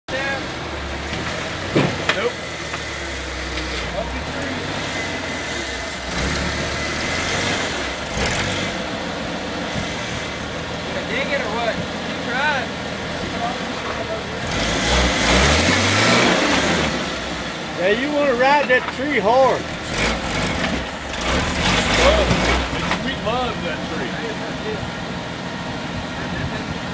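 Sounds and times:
off-road vehicle engine running: 0:00.1 - 0:26.9.

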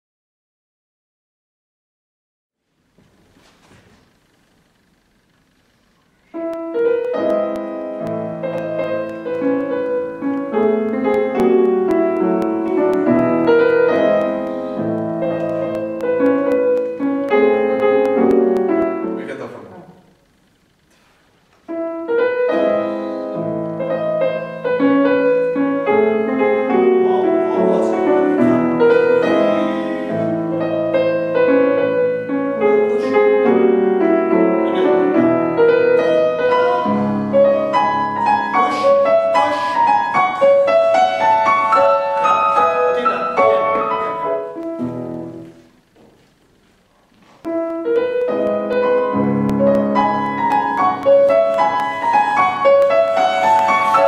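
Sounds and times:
grand piano playing classical piece: 0:06.2 - 0:20.0, 0:21.7 - 0:46.0, 0:46.8 - 0:54.0.

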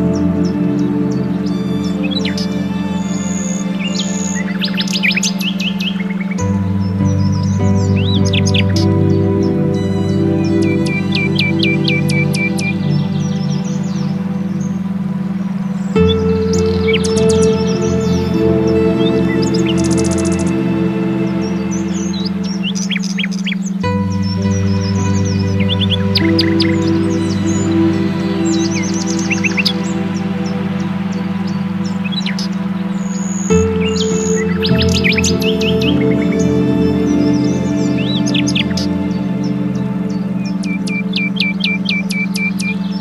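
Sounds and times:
ambient droning music: 0:00.0 - 0:43.0
birds chirping and trilling: 0:00.0 - 0:43.0.

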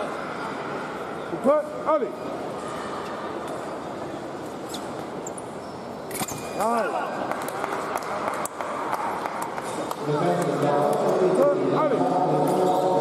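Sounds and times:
crowd and hall noise: 0:00.0 - 0:13.0.

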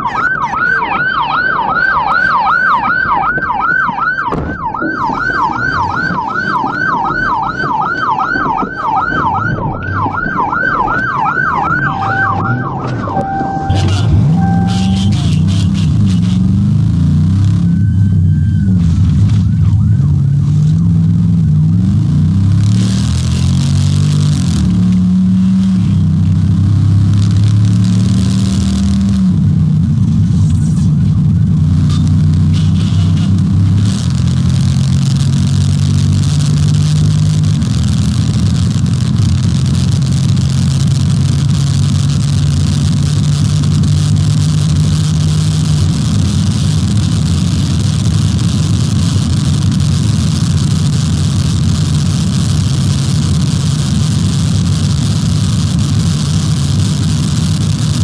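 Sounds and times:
loud wind and road noise: 0:00.0 - 0:58.0
car engine accelerating through gears: 0:09.1 - 0:58.0.

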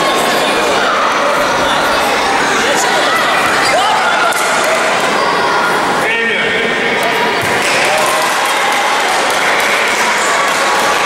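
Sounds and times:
crowd voices: 0:00.0 - 0:11.0
spectators clapping: 0:07.5 - 0:11.0.

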